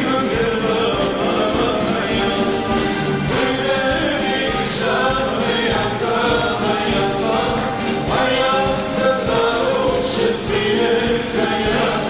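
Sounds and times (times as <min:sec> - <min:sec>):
backing band with drum beat: 0:00.0 - 0:12.0
man singing: 0:00.0 - 0:12.0.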